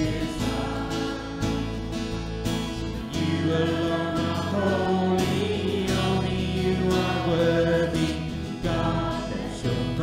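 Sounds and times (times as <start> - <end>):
voices singing together: 0.0 - 10.0
worship band playing: 0.0 - 10.0.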